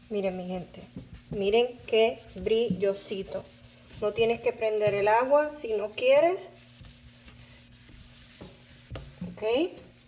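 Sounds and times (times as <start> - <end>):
cloth rubbing on a steel sink: 0.0 - 10.0.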